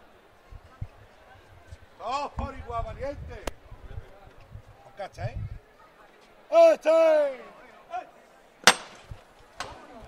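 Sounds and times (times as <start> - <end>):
sharp metallic knock with ring: 8.7 - 9.0.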